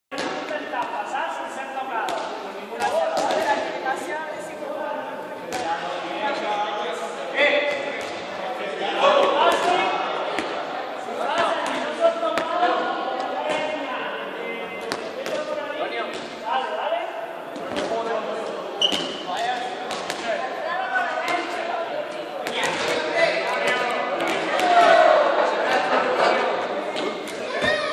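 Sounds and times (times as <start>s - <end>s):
crowd chattering and calling out: 0.1s - 27.9s.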